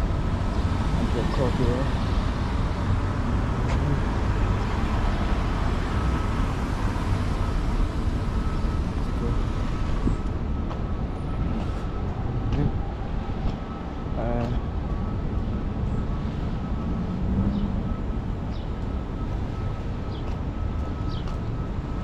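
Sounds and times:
low rumble of engines and tyres: 0:00.0 - 0:22.0
cars driving past: 0:16.3 - 0:18.5.

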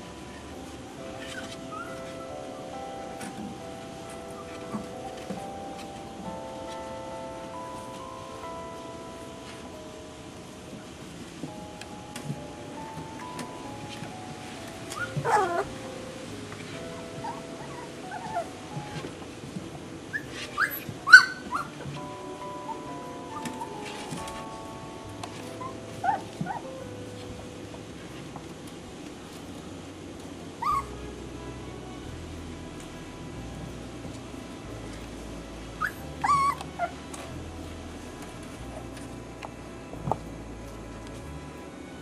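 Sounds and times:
puppy whining: 0:00.2 - 0:08.2, 0:12.8 - 0:27.2, 0:30.6 - 0:31.0, 0:35.8 - 0:37.4.

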